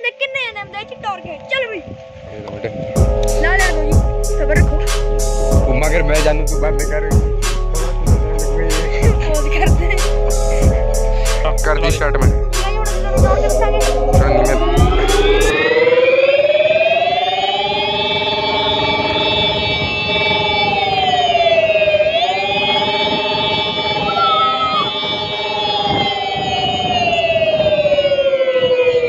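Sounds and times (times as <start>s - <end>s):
electric scooter drive whine: 12.9s - 29.0s.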